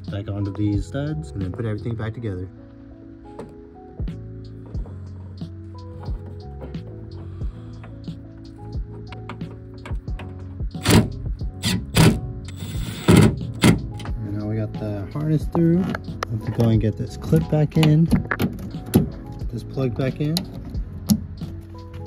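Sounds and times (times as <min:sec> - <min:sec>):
background music: 0:00.0 - 0:22.0
impact driver bursts: 0:10.8 - 0:13.8.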